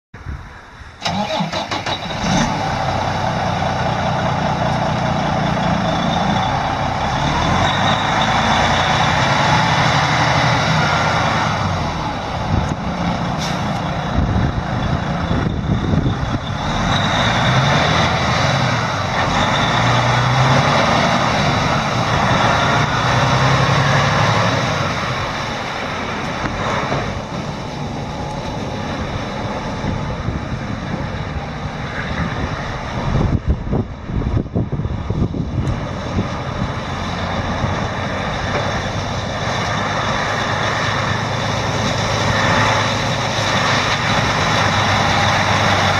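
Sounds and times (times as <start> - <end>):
truck diesel engine running: 1.0 - 45.9.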